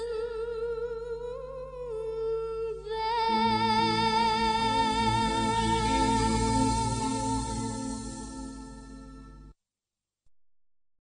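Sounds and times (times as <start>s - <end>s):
woman singing long note: 0.0s - 9.3s.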